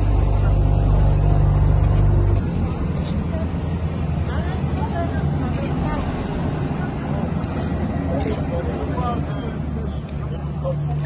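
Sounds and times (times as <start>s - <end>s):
diesel engine rumbling: 0.0s - 11.0s
faint voices: 0.0s - 11.0s.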